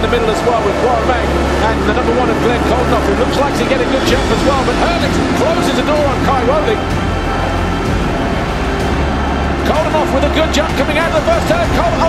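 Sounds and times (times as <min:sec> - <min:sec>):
background music: 0:00.0 - 0:12.0
motocross bikes racing: 0:00.0 - 0:12.0.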